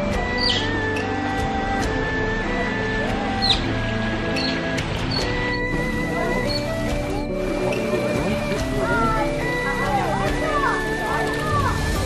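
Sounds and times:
background music sustained notes: 0.0s - 12.0s.

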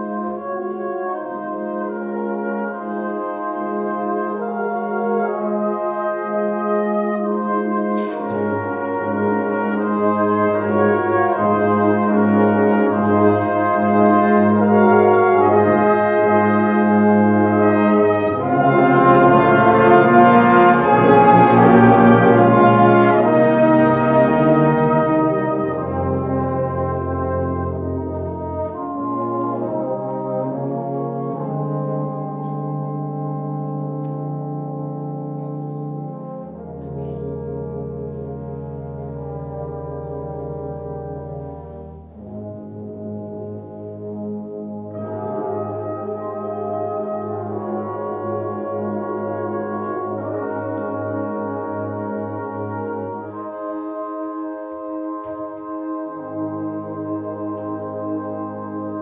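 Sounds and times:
brass band playing slow chords: 0.0s - 59.0s.

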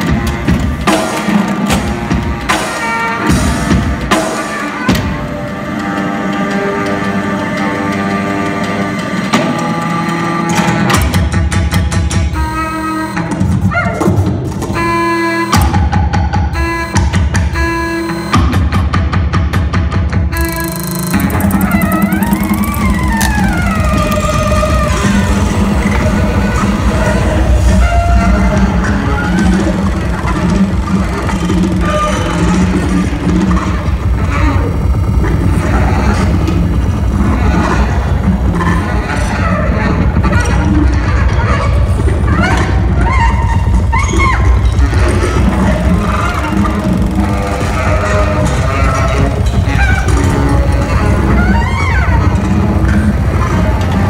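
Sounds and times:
sustained low saxophone tone: 12.3s - 13.4s, 20.3s - 54.0s
percussion: 13.2s - 54.0s
electronic sounds: 16.4s - 18.6s, 20.3s - 41.0s, 41.7s - 54.0s
sharp clicks: 20.4s - 25.6s.

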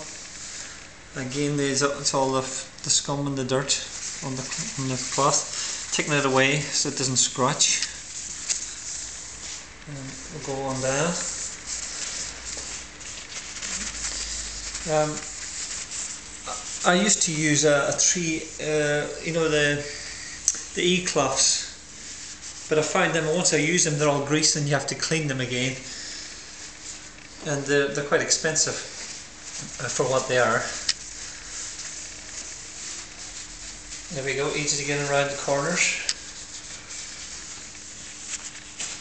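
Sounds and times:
paper towel wiping steel door: 0.0s - 39.0s.

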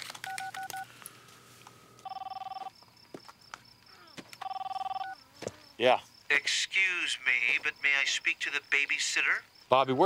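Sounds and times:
phone keypad beeping: 0.2s - 0.9s, 2.0s - 2.7s, 4.4s - 5.2s
phone ringer warbling trill: 2.0s - 2.7s, 4.4s - 5.2s.

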